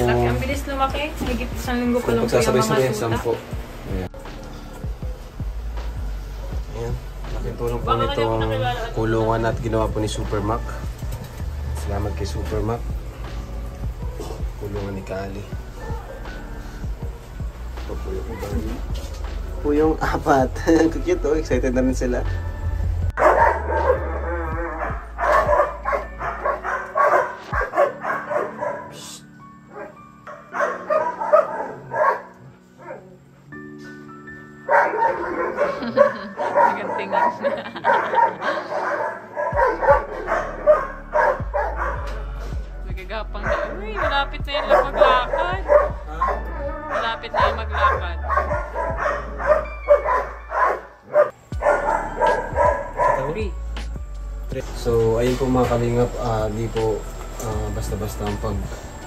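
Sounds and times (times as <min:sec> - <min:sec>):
background music: 0:00.0 - 0:59.0
puppies squealing and whimpering: 0:23.2 - 0:33.1, 0:34.7 - 0:42.4, 0:43.5 - 0:53.8.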